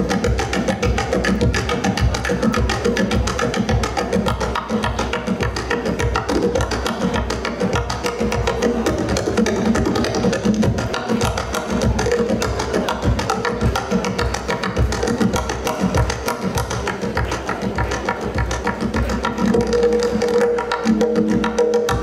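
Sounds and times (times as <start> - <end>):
goblet drum played with fingers: 0.0 - 22.0.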